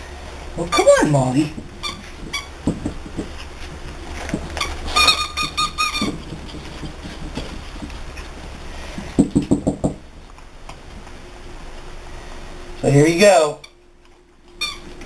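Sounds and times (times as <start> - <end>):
puppies squeaking: 1.8 - 2.7, 4.5 - 7.4, 14.6 - 15.0
puppies yapping: 4.4 - 8.5.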